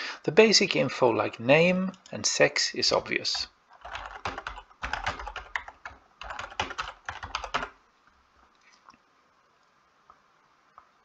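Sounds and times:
typing on computer keyboard: 3.8s - 7.8s.

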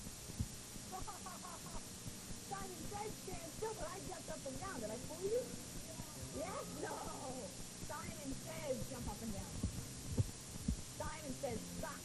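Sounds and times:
steady low hum: 0.0s - 12.0s
dull low thumps: 7.6s - 11.6s.

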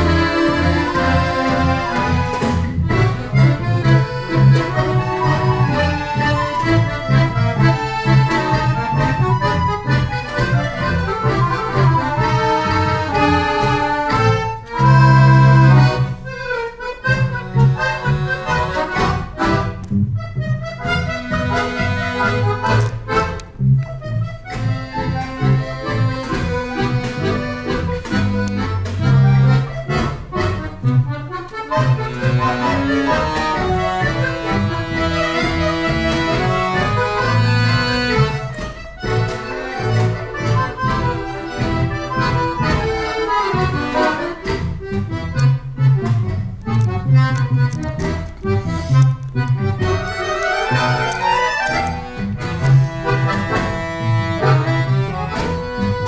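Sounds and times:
accordion ensemble playing: 0.0s - 56.0s.

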